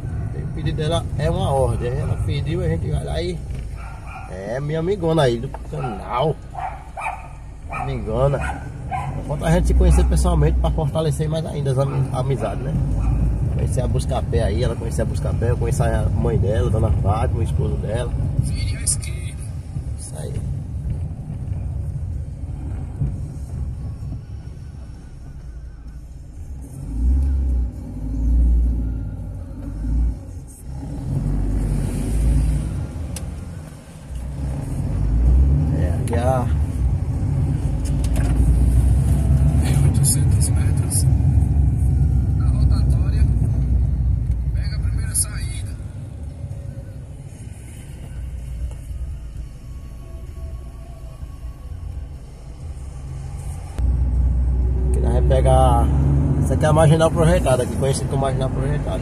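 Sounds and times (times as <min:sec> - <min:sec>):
engine and tyre rumble: 0:00.0 - 0:59.0.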